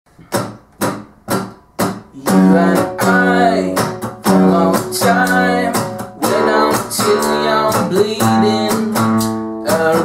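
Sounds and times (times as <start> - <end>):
acoustic guitar strumming: 0.2 - 10.0.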